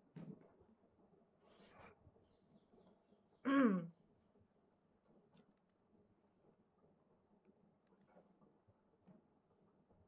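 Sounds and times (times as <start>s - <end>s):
woman clearing her throat: 3.5s - 3.9s.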